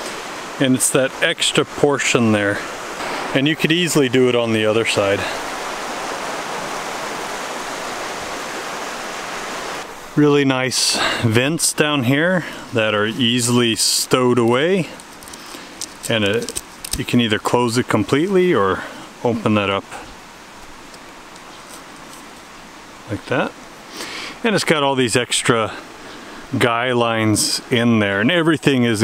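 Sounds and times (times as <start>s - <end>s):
steady rushing noise: 0.0s - 14.9s
steady soft hiss: 0.0s - 29.0s.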